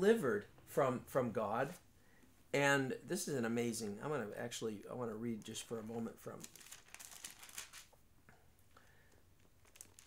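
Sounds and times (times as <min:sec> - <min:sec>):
thin pages being turned: 0:06.4 - 0:08.0, 0:09.4 - 0:10.0.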